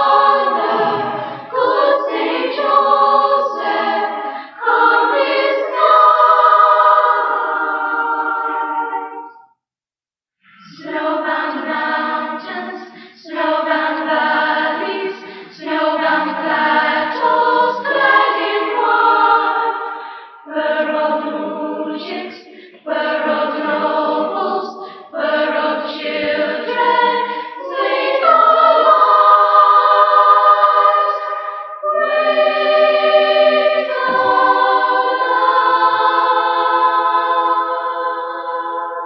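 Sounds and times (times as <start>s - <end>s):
children's choir singing: 0.0s - 9.4s, 10.4s - 39.0s.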